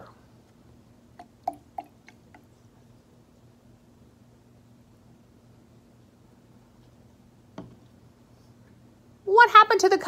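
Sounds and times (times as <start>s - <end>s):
water plinking into liquid: 1.2s - 2.4s.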